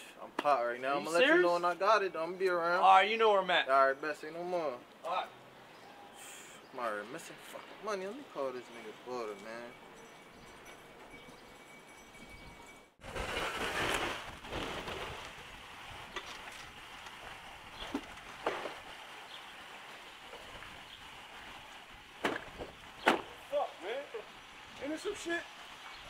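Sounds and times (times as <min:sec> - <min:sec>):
outdoor background hiss: 0:00.0 - 0:26.0
sharp knocks: 0:22.2 - 0:23.4.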